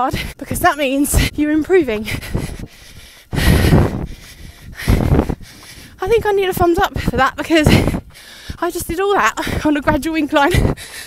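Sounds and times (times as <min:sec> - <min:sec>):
person breathing heavily: 0:02.0 - 0:06.0, 0:07.0 - 0:08.6, 0:10.5 - 0:11.0.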